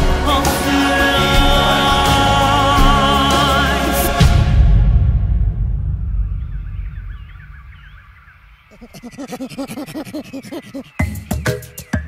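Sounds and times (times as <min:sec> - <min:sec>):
music: 0:00.0 - 0:06.9, 0:10.9 - 0:12.0
rapid pitched laugh: 0:08.7 - 0:11.3.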